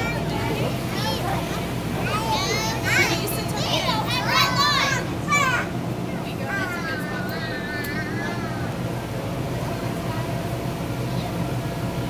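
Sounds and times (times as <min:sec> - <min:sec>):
children shouting and chattering: 0:00.0 - 0:11.8
low background hum: 0:00.0 - 0:12.0.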